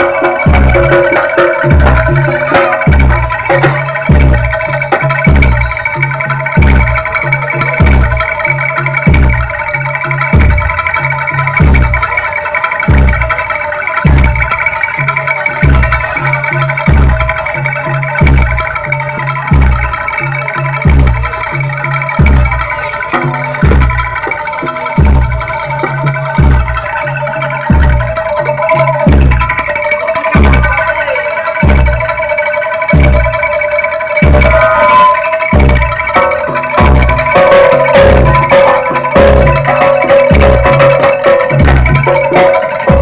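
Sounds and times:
gamelan music over speakers: 0.0s - 43.0s.

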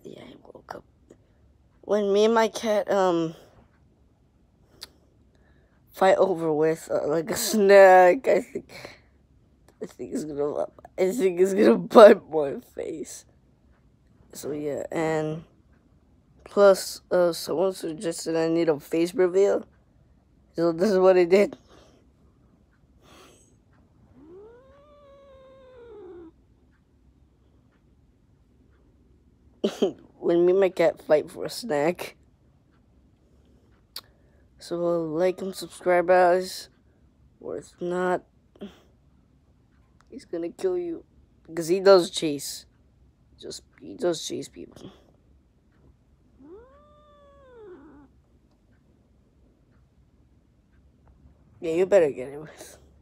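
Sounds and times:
cat meowing: 24.2s - 26.4s, 46.4s - 48.1s.

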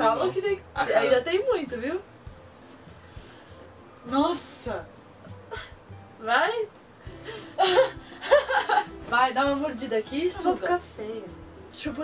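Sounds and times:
young women laughing and gasping: 7.2s - 8.9s.

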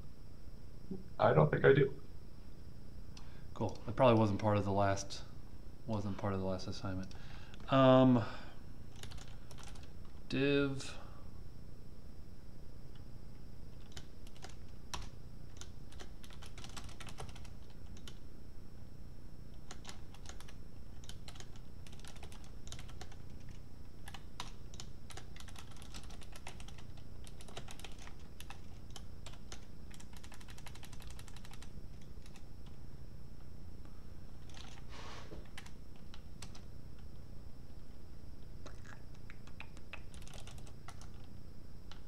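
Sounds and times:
typing on computer keyboard: 8.9s - 10.2s, 13.8s - 18.2s, 19.6s - 32.8s, 34.4s - 36.7s, 38.8s - 41.3s.

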